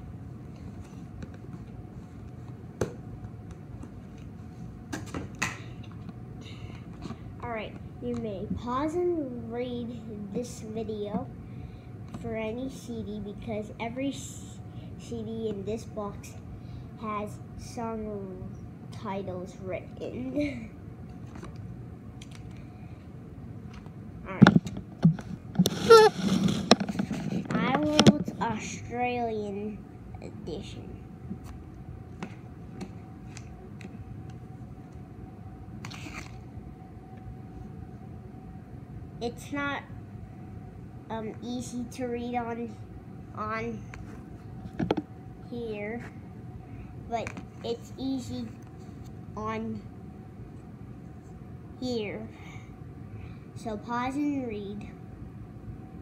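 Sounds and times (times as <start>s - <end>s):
low room hum: 0.0s - 56.0s.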